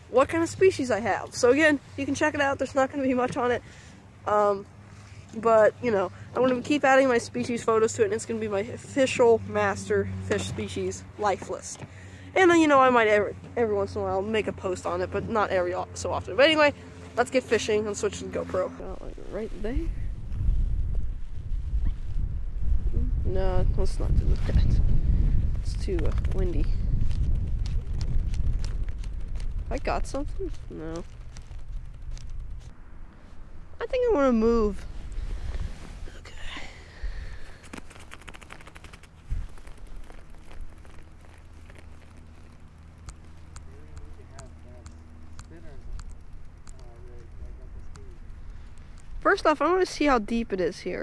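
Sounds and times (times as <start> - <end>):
wind buffeting microphone: 5.4 - 51.0
small clicks: 37.6 - 49.3.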